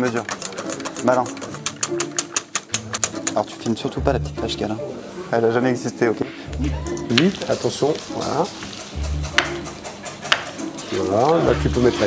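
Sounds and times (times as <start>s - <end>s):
metal spoon stirring in pan: 7.0s - 12.0s.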